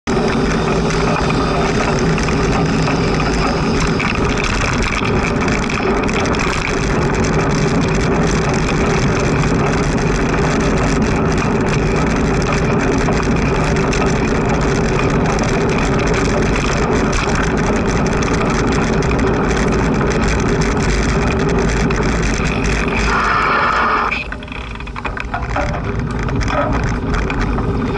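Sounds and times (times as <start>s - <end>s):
tyres humming on tarmac: 0.1s - 27.9s
wind rush: 0.1s - 27.9s
bicycle brake squeal: 0.5s - 4.8s, 22.4s - 24.5s.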